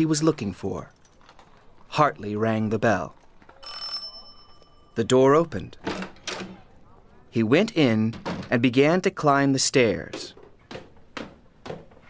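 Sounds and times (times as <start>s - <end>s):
doorbell ringing: 3.6s - 5.6s.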